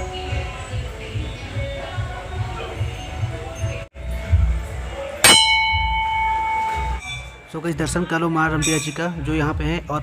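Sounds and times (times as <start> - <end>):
metal temple bell ringing: 5.2 - 7.5.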